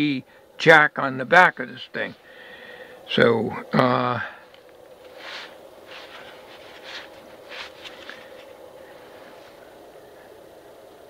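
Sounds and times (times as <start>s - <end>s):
steady faint hum: 0.0s - 11.0s.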